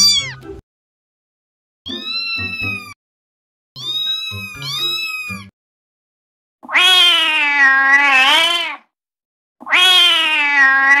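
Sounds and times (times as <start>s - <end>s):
cat meowing: 0.0s - 0.5s, 1.9s - 3.0s, 3.8s - 5.5s, 6.6s - 8.9s, 9.6s - 11.0s.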